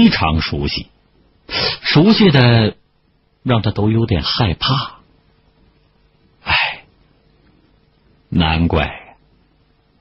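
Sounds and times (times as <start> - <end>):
person breathing sharply: 1.5 - 1.9.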